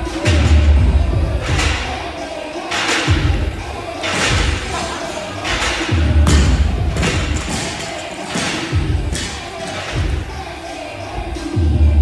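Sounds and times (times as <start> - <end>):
faint music: 0.0 - 12.0.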